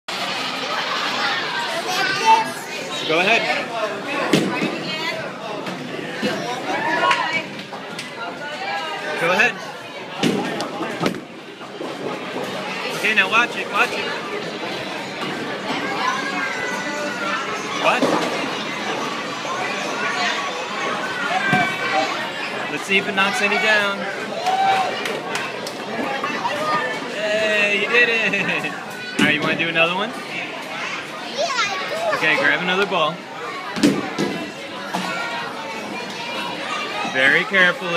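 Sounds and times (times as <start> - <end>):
people chattering: 0.1 - 37.9
child speaking: 1.8 - 2.9, 31.3 - 32.2.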